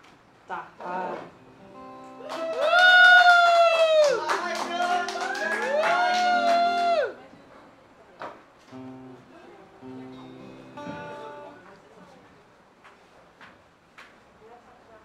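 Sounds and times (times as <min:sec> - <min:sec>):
acoustic guitar chords: 0:00.8 - 0:02.3, 0:04.4 - 0:07.1, 0:08.7 - 0:11.7.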